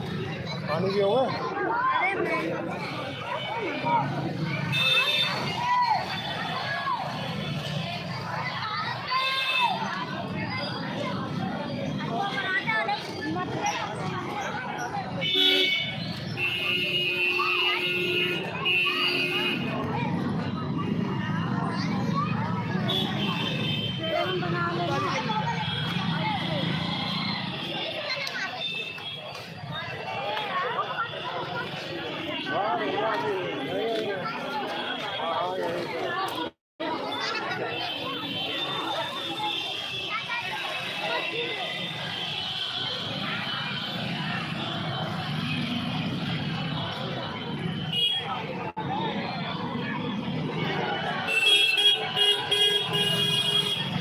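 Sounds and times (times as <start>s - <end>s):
many voices talking: 0.0s - 54.0s
street traffic rumble: 0.0s - 54.0s.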